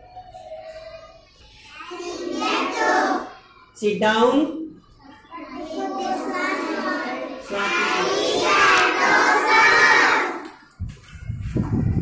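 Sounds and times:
young children speaking together: 0:00.0 - 0:03.8, 0:04.8 - 0:10.6.

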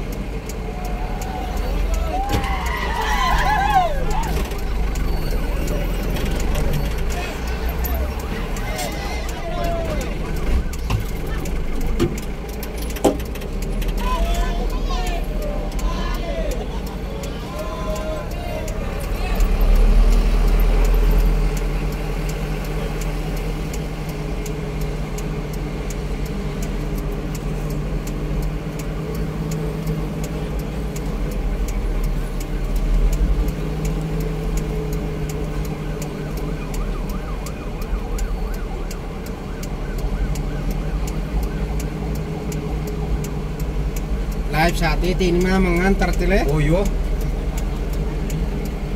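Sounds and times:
car engine running: 0:00.0 - 0:48.9
road noise inside vehicle: 0:00.0 - 0:48.9.

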